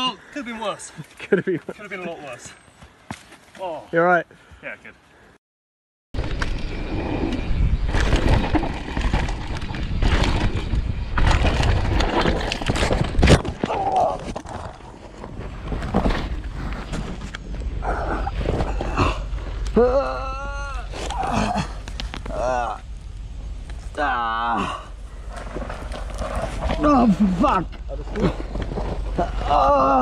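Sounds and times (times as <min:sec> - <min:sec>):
wind buffeting microphone: 0:06.2 - 0:12.4
bike rattling: 0:06.2 - 0:30.0.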